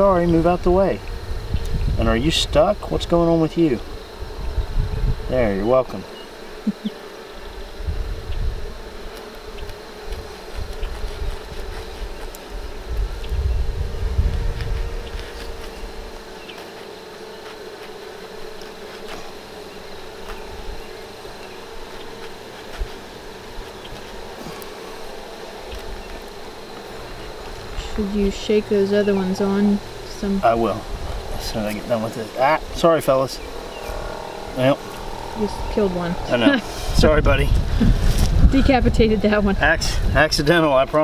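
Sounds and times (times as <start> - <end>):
bees buzzing: 0.0 - 41.0
low rumbling: 12.6 - 16.2, 26.9 - 40.2.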